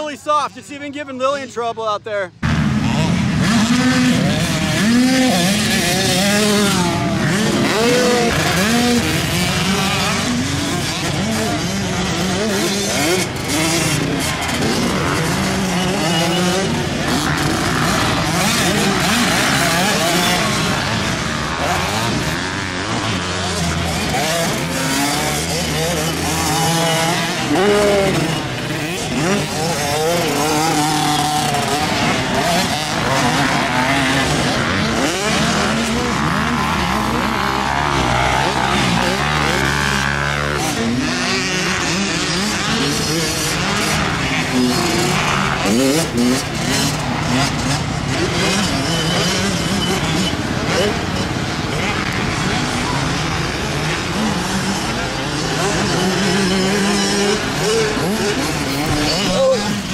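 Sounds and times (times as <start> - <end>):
dirt bike engines revving: 0.0 - 59.9.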